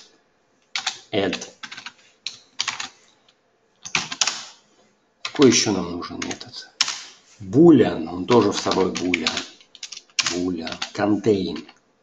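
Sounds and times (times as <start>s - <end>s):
typing on computer keyboard: 0.7s - 2.9s, 3.8s - 4.5s, 8.3s - 11.8s.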